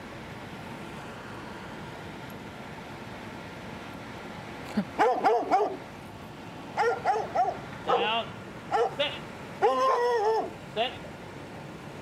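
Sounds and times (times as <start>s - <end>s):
dog barking: 5.0s - 5.8s, 6.8s - 10.5s
dog yelping: 5.0s - 5.8s, 6.8s - 9.0s, 9.6s - 10.6s.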